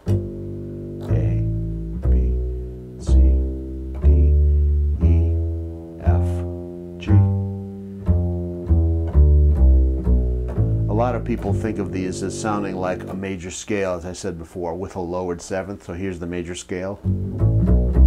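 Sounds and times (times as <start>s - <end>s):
upright bass plucked notes: 0.0s - 13.5s, 17.0s - 18.0s.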